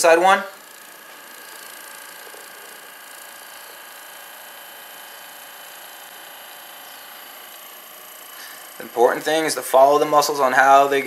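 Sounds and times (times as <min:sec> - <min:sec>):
massage gun motor whir: 0:00.0 - 0:11.0.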